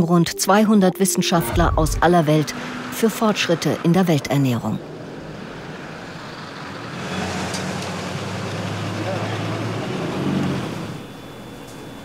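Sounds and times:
vehicle passing: 1.4s - 11.0s.

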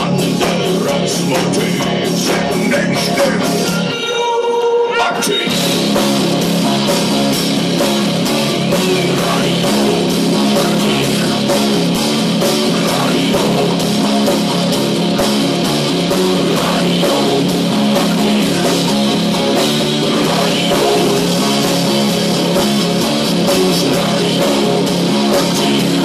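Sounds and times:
distorted electric guitars: 0.0s - 26.0s
drum kit beat: 0.0s - 26.0s.

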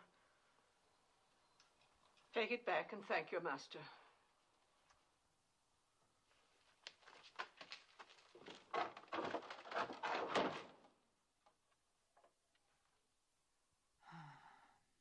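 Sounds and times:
knocks thuds and rustling clatter: 7.1s - 11.0s.

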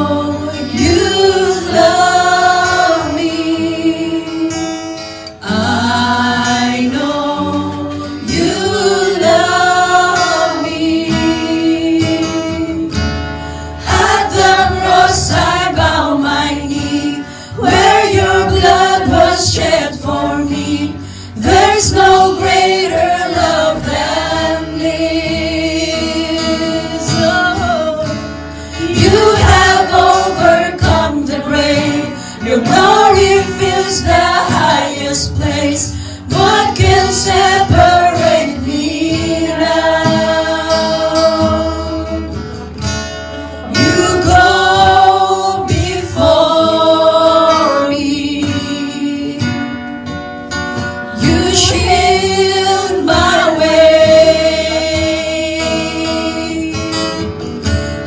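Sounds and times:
women singing a slow hymn: 0.0s - 42.8s, 43.6s - 50.2s, 50.8s - 58.0s
acoustic guitar: 0.0s - 58.0s.

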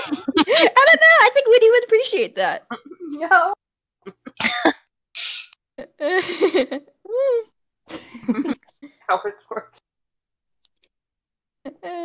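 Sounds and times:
person coughing: 4.2s - 4.8s.

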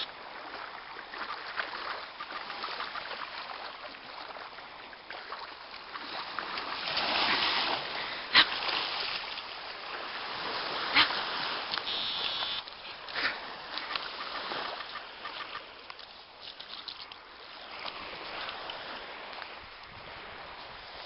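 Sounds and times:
steady hiss of waves: 0.0s - 21.0s
dog splashing through shallow water: 0.3s - 19.4s.

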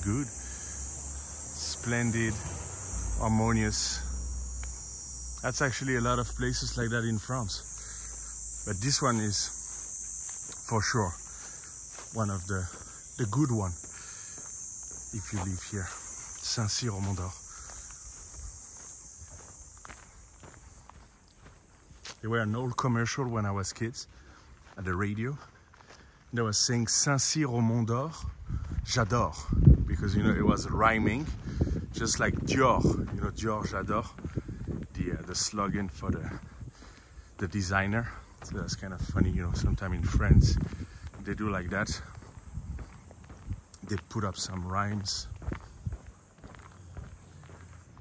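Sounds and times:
footsteps on a path: 0.0s - 48.0s
insect chorus: 0.0s - 48.0s.

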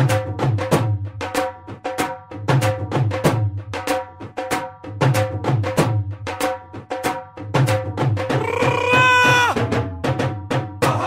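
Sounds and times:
dhol drum rhythm: 0.0s - 11.0s.

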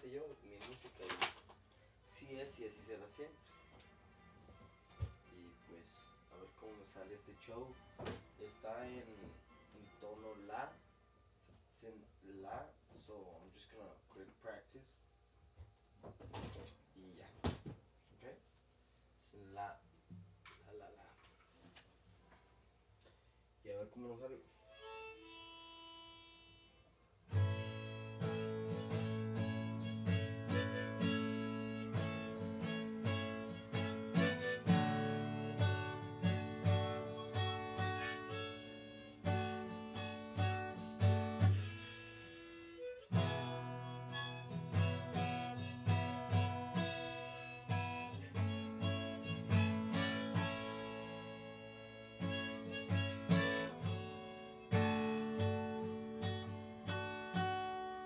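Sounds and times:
harmonica: 24.5s - 58.0s
acoustic guitar strumming: 27.3s - 58.0s.

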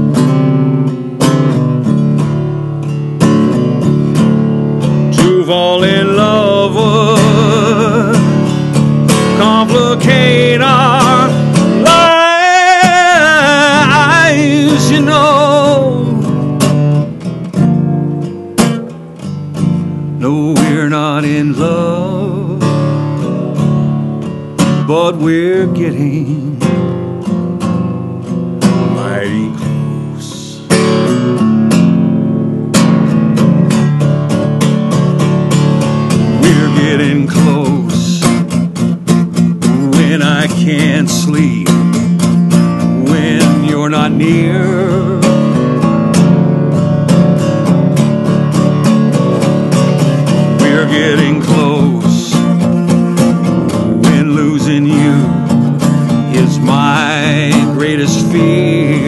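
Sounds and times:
acoustic guitar picked notes: 0.0s - 59.0s
acoustic guitar strumming: 0.0s - 59.0s.

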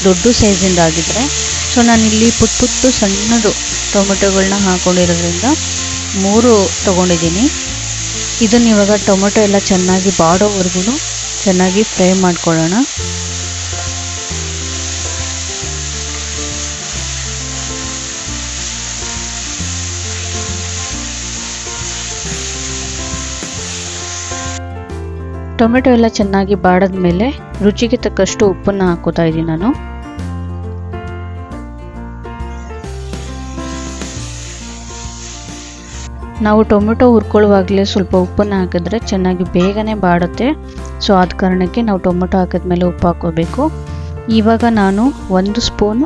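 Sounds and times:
vegetables sizzling in oil: 0.0s - 24.6s, 32.5s - 36.2s, 44.6s - 46.0s
background music of low notes: 0.0s - 46.0s.

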